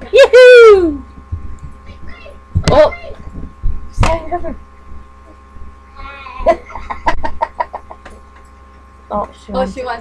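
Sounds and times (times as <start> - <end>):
girl laughing: 6.2 - 8.2.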